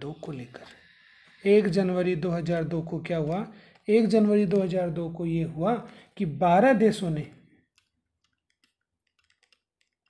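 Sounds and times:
clicks of writing on digital board: 2.3 - 6.0, 6.8 - 10.0.

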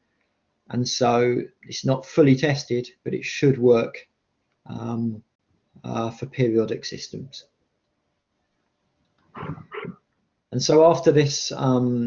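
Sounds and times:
short voiced sounds: 9.4 - 10.0.

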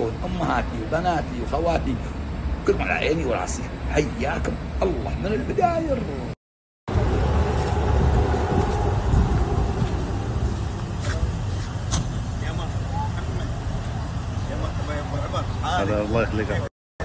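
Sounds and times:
vehicle engine running: 6.9 - 16.7.

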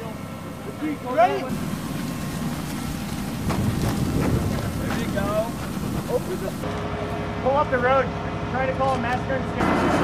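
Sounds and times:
wind rumbling on microphone: 1.6 - 6.6
footsteps and gear knocks: 1.9 - 6.7.

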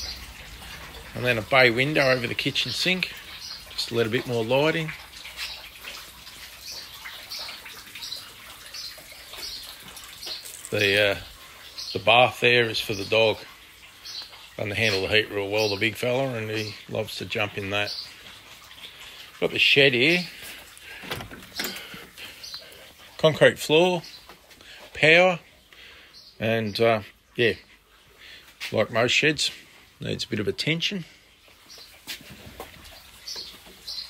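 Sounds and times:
water feature trickling and splashing: 0.0 - 34.0
soft knocks and shuffling footsteps: 20.3 - 25.6, 28.5 - 30.0, 31.4 - 33.9.

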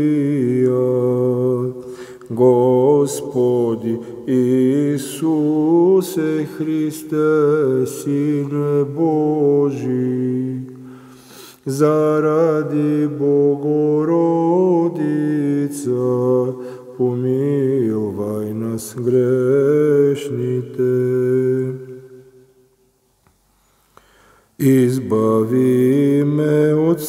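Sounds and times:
man chanting: 0.0 - 10.8, 11.6 - 22.4, 24.6 - 27.0.

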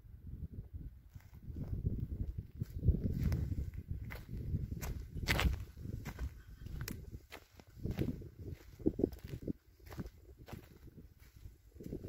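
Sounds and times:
footsteps on dry dirt: 1.1 - 12.0.

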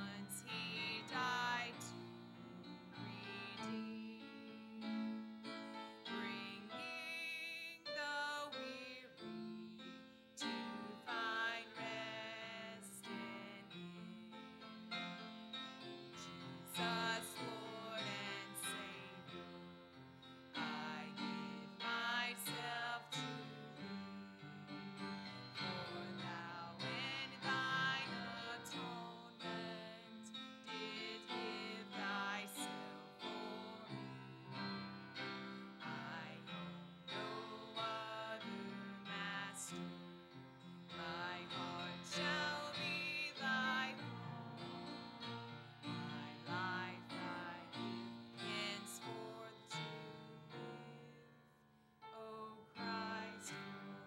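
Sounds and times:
woman singing a hymn: 0.0 - 14.4, 16.2 - 19.5, 20.5 - 34.6, 35.8 - 40.0, 40.9 - 45.1, 45.9 - 51.3, 52.0 - 54.0.

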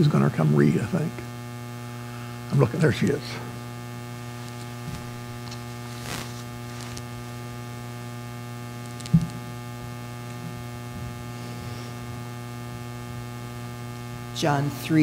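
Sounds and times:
electrical mains hum: 0.0 - 15.0
microphone handling bump: 4.1 - 8.0, 9.0 - 9.6, 10.4 - 12.3.

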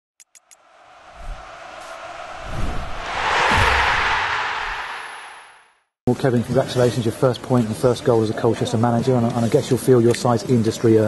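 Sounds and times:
rush of noise: 0.6 - 5.7
low thumps: 1.1 - 5.6.

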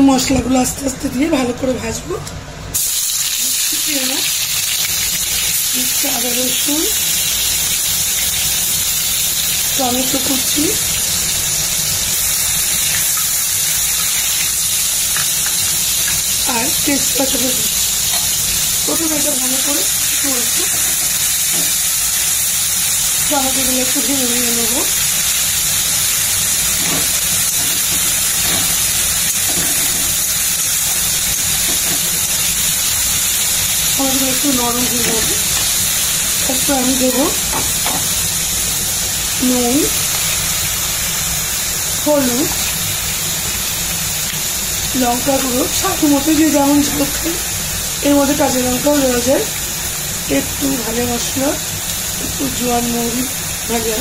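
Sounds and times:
paste sizzling in hot oil: 2.7 - 54.0.

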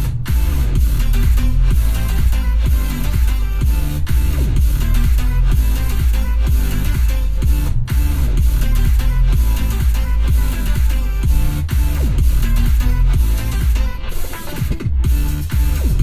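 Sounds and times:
electronic music with heavy bass: 0.0 - 16.0.

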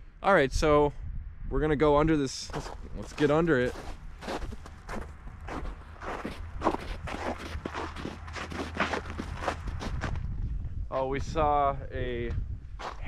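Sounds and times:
low steady rumble: 0.0 - 13.0
footsteps on snow: 2.4 - 10.4, 12.7 - 13.0.

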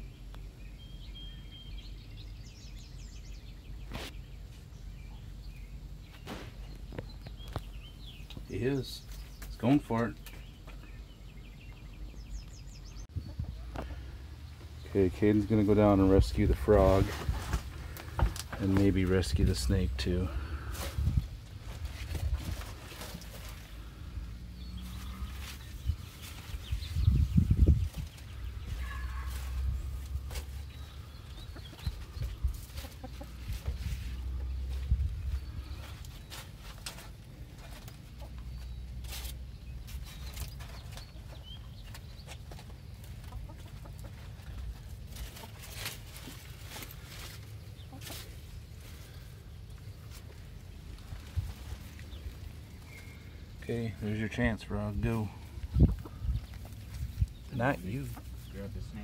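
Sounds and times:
rustling and scraping in window well: 3.8 - 4.8, 13.7 - 54.2
chickens clucking: 13.1 - 54.2, 54.8 - 59.0.

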